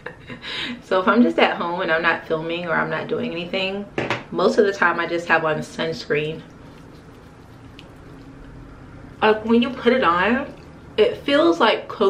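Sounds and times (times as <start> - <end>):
faint hiss and hum: 0.0 - 12.0.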